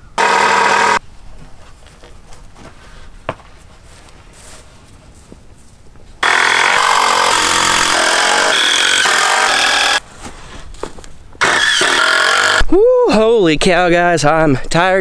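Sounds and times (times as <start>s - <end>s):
handheld power tool running: 0.2s - 1.0s, 6.2s - 10.0s, 11.4s - 12.6s.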